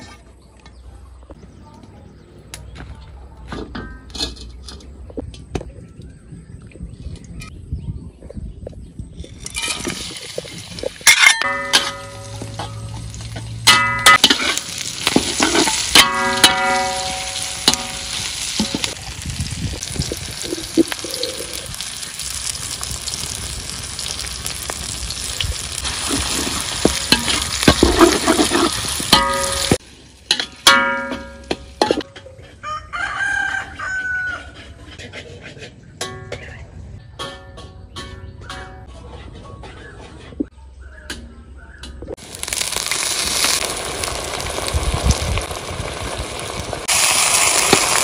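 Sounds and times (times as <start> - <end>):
metal spoon scraping wok: 0.0 - 0.8, 9.2 - 19.0, 25.8 - 36.6
food sizzling in a wok: 9.6 - 30.7, 42.2 - 48.0.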